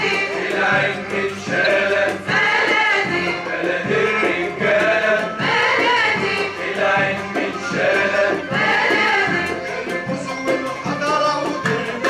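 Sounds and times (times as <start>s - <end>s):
male choir singing in unison: 0.0s - 12.0s
qanun: 0.0s - 12.0s.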